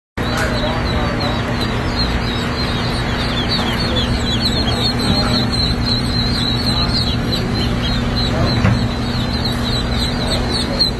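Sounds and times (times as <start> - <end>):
ducklings peeping: 0.2 - 10.9
steady low hum: 0.2 - 10.9.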